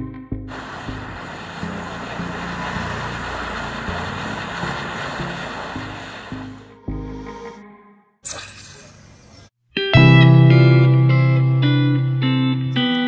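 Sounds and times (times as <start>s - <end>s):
gas torch flame hissing: 0.5s - 6.7s.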